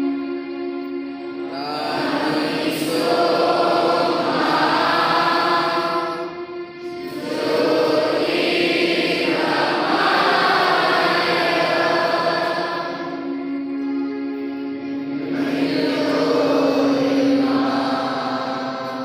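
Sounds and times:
choir singing in unison: 0:01.4 - 0:13.4, 0:15.1 - 0:19.0.

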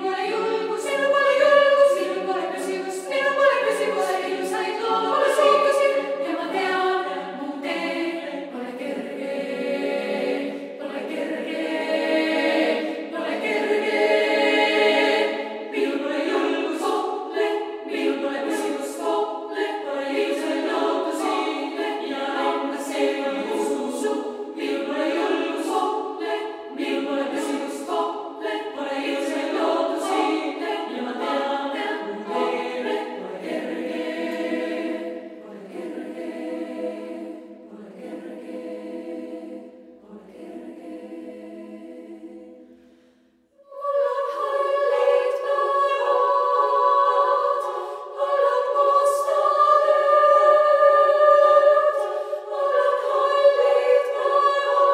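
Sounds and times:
female choir singing a cappella: 0:00.0 - 0:54.9.

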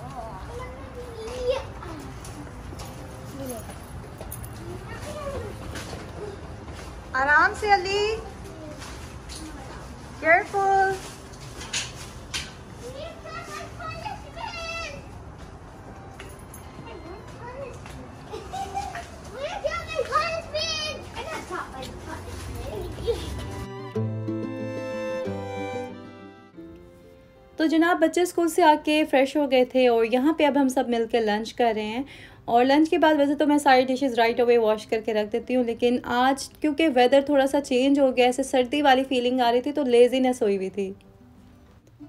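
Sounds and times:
children calling out: 0:12.8 - 0:15.4, 0:16.8 - 0:21.6.

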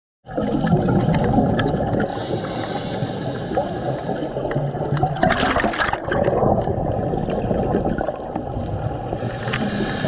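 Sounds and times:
water rushing and gurgling: 0:00.3 - 0:10.0.

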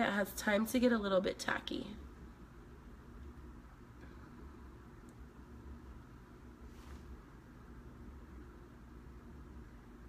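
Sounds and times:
faint background hiss: 0:00.0 - 0:10.0
low hum: 0:00.5 - 0:10.0.

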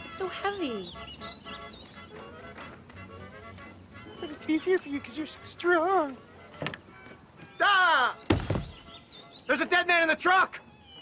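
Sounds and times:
heavy thunk of wooden trunk: 0:08.3 - 0:08.9.

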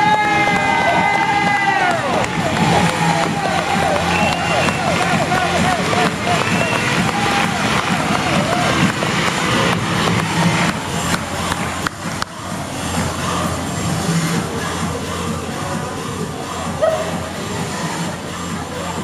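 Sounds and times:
arena crowd cheering and applauding: 0:00.0 - 0:13.5
music playing: 0:00.0 - 0:19.0.

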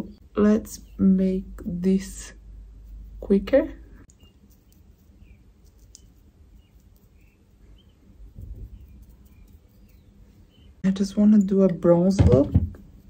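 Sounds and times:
soft low rustle: 0:02.3 - 0:10.8
faint bird chirps: 0:03.9 - 0:10.9.

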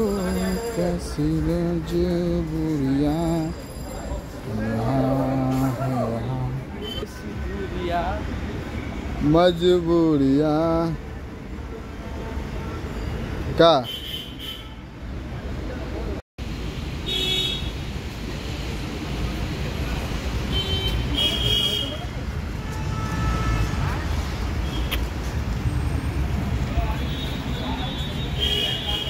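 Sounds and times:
traffic rumble: 0:00.0 - 0:29.0.

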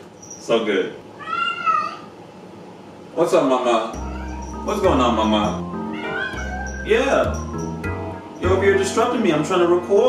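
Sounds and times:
cat meowing: 0:01.1 - 0:02.1, 0:04.0 - 0:04.9, 0:05.6 - 0:08.4.

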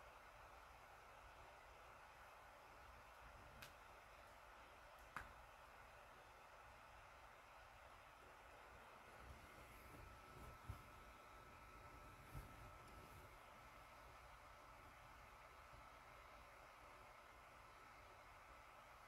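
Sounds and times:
faint room hiss: 0:00.0 - 0:19.0.

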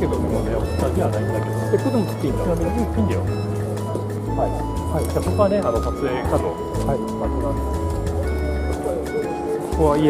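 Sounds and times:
background music of held notes: 0:00.0 - 0:10.0.

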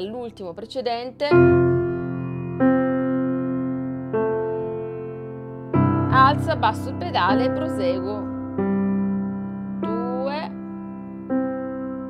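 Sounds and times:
slow piano notes ringing: 0:00.0 - 0:12.0.

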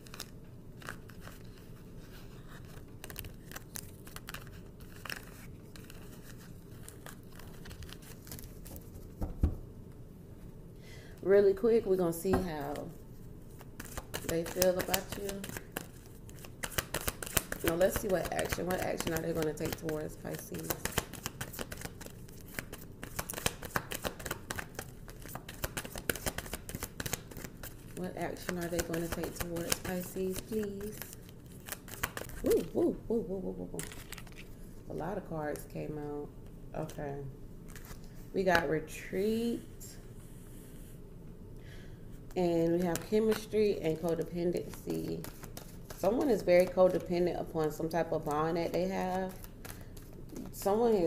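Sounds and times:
cards being shuffled: 0:00.0 - 0:09.4, 0:13.5 - 0:32.8, 0:33.7 - 0:34.7, 0:37.7 - 0:38.6, 0:42.7 - 0:47.2, 0:48.7 - 0:51.0.

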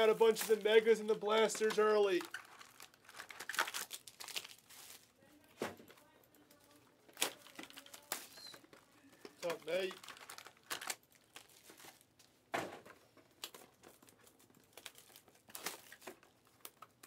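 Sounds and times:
plastic wrapping crinkling and tearing: 0:00.0 - 0:05.2, 0:06.3 - 0:12.3, 0:13.3 - 0:17.0.

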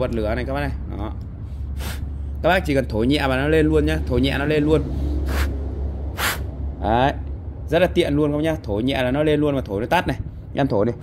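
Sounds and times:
puffs of breath: 0:01.4 - 0:02.4, 0:04.9 - 0:06.5.

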